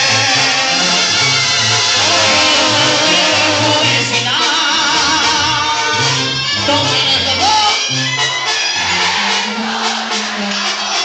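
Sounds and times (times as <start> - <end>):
man singing: 0.0 - 1.2, 2.0 - 7.8
low bass notes: 0.0 - 8.2
live latin band music: 0.0 - 11.0.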